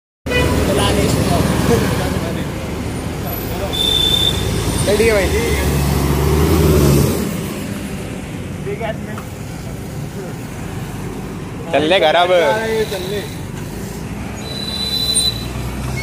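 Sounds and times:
roadside traffic: 0.2 - 16.0
bus engine rumble passing: 0.3 - 16.0
high squeal: 14.3 - 16.0.

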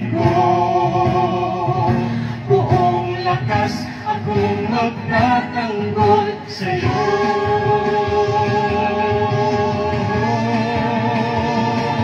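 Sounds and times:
woman singing: 2.5 - 9.5.

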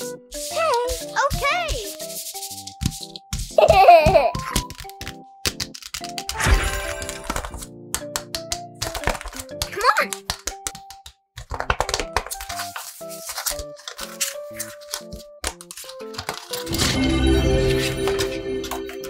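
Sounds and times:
paper crinkling and rustling: 0.0 - 6.3, 7.0 - 7.7, 8.7 - 17.0
background music simple melody: 0.0 - 19.0.

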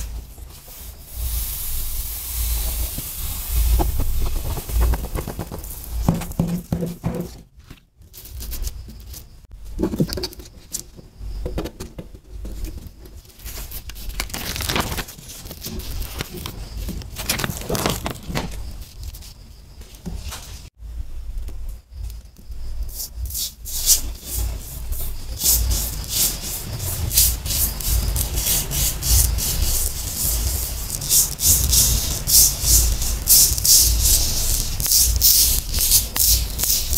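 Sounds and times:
sand shaken onto sheet: 0.0 - 7.3, 22.9 - 36.9
fingers tapping and brushing paper: 2.6 - 7.3, 23.8 - 36.9.

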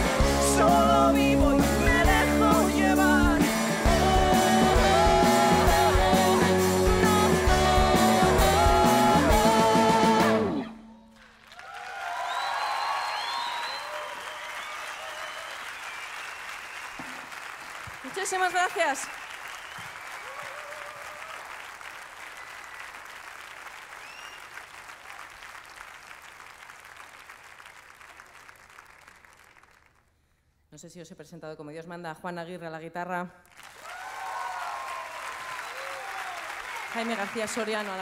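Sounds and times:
audience applauding and cheering: 0.0 - 30.1, 33.5 - 38.0
loud shout from crowd: 11.6 - 15.5, 20.2 - 21.5, 33.8 - 36.9
whistles from crowd: 12.0 - 17.2, 19.0 - 21.0, 23.9 - 24.7.

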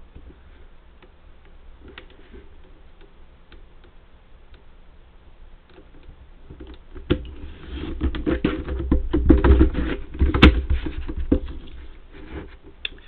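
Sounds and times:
laminated sheet rustling and scraping: 7.4 - 12.7.

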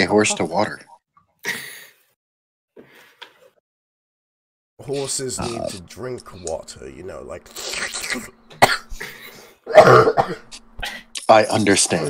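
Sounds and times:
loud harsh cough: 7.7 - 11.1.

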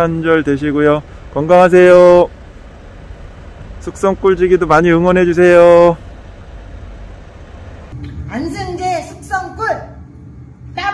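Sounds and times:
low outdoor rumble: 0.0 - 10.9.

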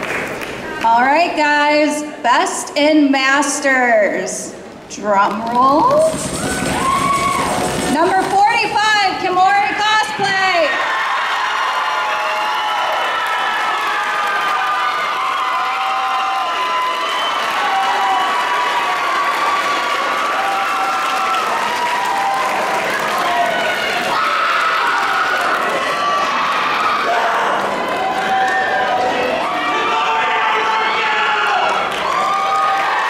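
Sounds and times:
audience cheering and applauding: 5.9 - 9.2, 10.2 - 33.0.

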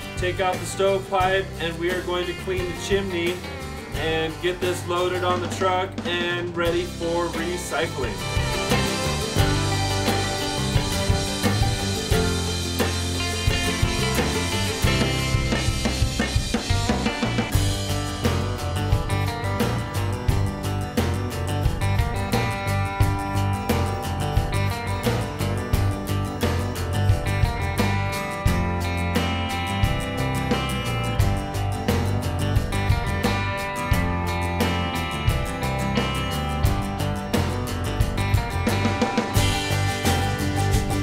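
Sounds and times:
strummed acoustic guitar music: 0.0 - 41.0.

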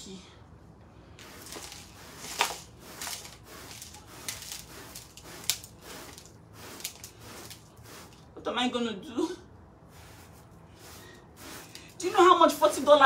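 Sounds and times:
sweeping debris into dustpan: 1.2 - 8.2.

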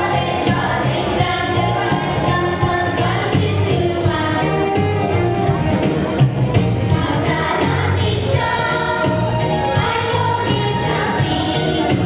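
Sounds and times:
children's choir singing: 0.0 - 4.9, 6.9 - 12.0
instrumental accompaniment: 0.0 - 12.0.

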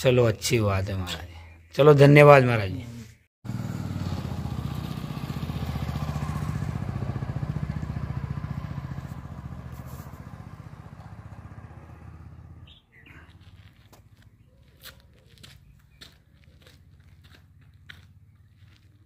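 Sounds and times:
vehicle engine running: 3.4 - 13.9, 16.0 - 19.0.

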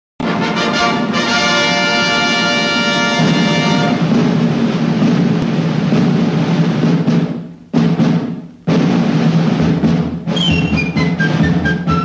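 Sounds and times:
orchestral drum roll: 0.2 - 12.0.

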